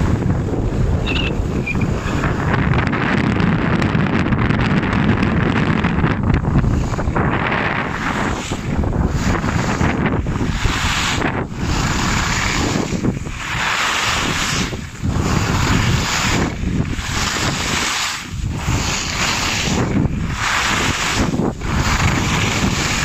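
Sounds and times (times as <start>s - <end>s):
skis carving on snow: 0.0s - 23.0s
wind buffeting microphone: 0.0s - 23.0s.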